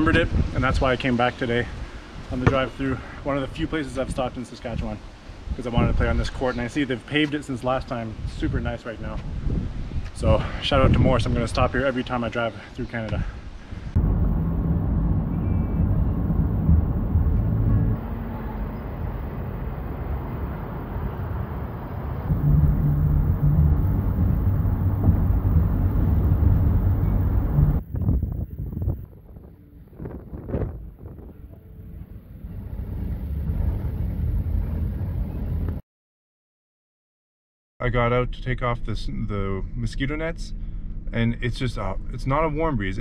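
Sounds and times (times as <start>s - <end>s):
low drone of engine and tyres: 13.6s - 35.8s
short knocks: 22.3s - 27.8s.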